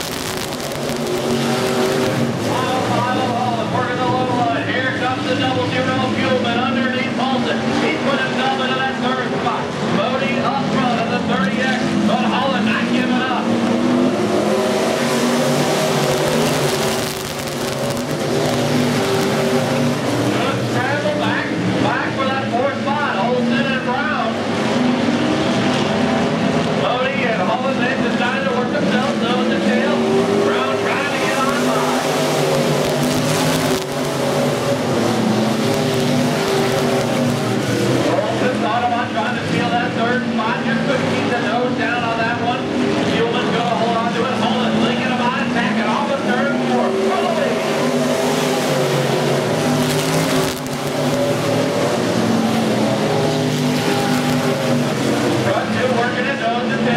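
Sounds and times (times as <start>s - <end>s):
race car engines roaring: 0.0s - 56.9s.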